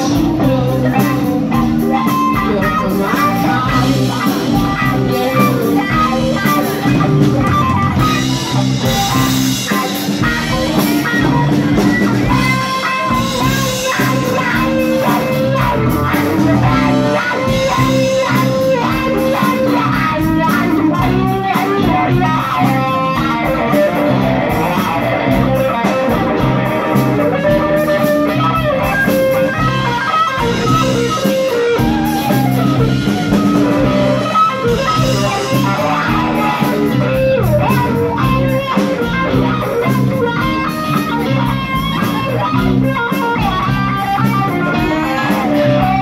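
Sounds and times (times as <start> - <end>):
bass guitar: 0.0 - 46.0
drum kit: 0.0 - 46.0
electric guitar: 0.0 - 46.0.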